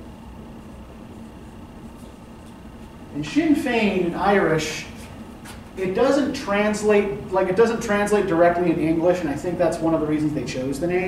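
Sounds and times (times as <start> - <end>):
steady low room hum: 0.0 - 11.0.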